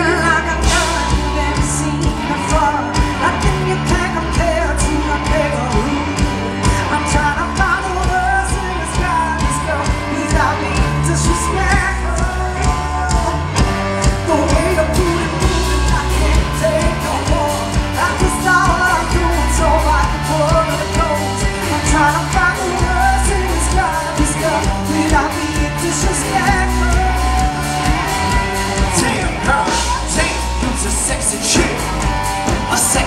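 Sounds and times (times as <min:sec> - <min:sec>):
bass: 0:00.0 - 0:33.0
electric guitar: 0:00.0 - 0:33.0
woman singing lead: 0:00.0 - 0:33.0.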